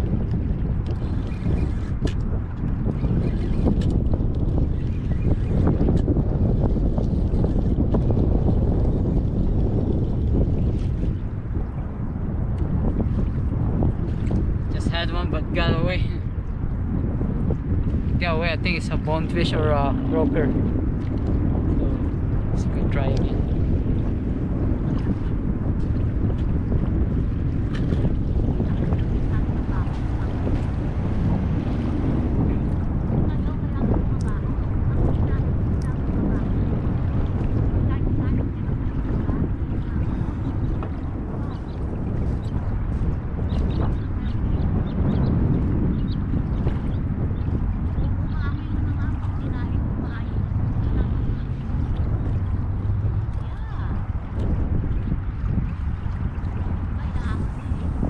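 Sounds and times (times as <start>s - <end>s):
wind buffeting microphone: 0.0s - 58.0s
small waves at shoreline: 17.6s - 58.0s.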